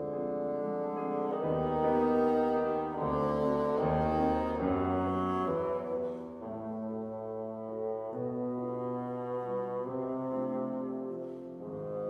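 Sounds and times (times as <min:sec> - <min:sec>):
bassoon playing long notes: 0:00.0 - 0:12.0
piano: 0:00.0 - 0:12.0.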